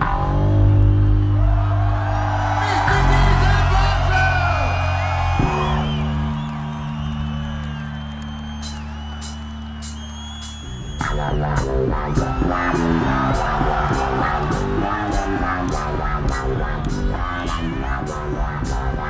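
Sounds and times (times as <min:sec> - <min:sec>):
electric bass guitar playing: 0:11.0 - 0:19.0.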